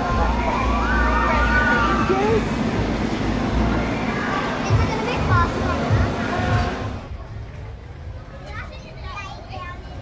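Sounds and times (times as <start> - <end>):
roller coaster rumbling on track: 0.0 - 10.0.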